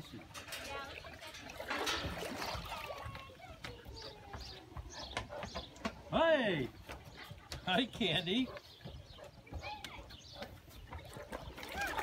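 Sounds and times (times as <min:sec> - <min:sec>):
water splashing and trickling: 0:00.0 - 0:12.0.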